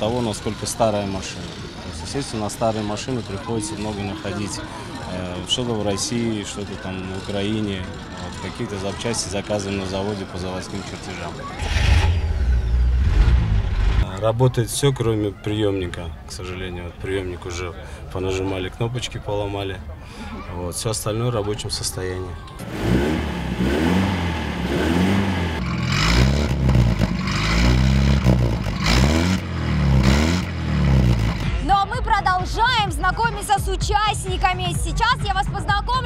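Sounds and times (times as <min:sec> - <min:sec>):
vehicle engine rumbling: 0:00.0 - 0:14.7, 0:22.2 - 0:32.4
car engine revving: 0:11.4 - 0:14.1, 0:22.6 - 0:31.6.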